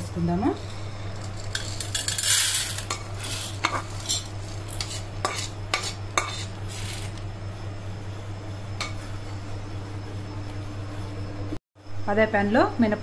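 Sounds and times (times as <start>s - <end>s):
lentils rattling into plate: 1.2s - 5.0s.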